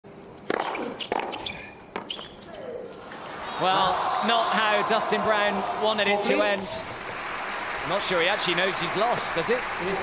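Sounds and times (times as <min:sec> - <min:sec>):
ball bouncing: 0:00.4 - 0:02.4.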